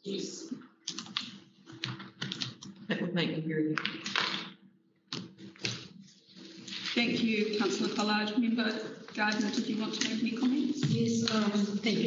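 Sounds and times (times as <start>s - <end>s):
computer keyboard typing: 0.8s - 2.8s, 7.5s - 12.0s.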